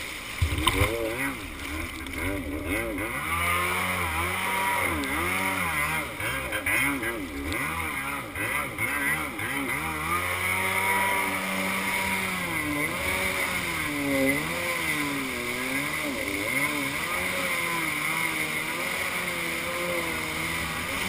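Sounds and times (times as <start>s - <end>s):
hiss of wind and water: 0.0s - 2.6s, 10.2s - 21.0s
jet ski engine revving: 0.0s - 21.0s.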